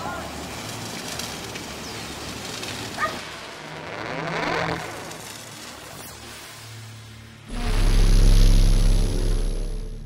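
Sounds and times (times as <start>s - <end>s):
outdoor background noise: 0.0s - 10.0s
loud swelling sound: 7.5s - 10.0s
low steady hum: 7.5s - 10.0s.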